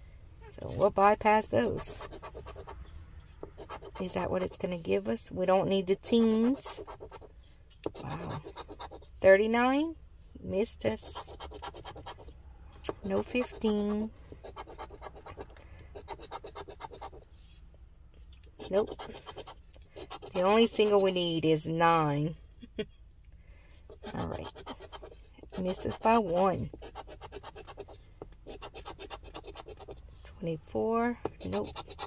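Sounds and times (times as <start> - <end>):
coin scratching lottery ticket: 11.0 - 12.3, 13.0 - 17.2, 18.6 - 21.0, 23.9 - 30.0, 31.4 - 32.0.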